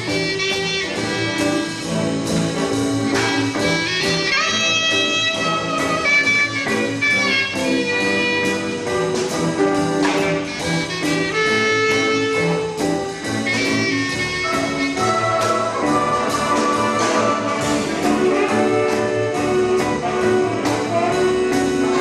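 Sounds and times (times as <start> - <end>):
clarinet solo melody: 0.0 - 22.0
jazz big band playing swing: 0.0 - 22.0
trumpets: 0.0 - 22.0.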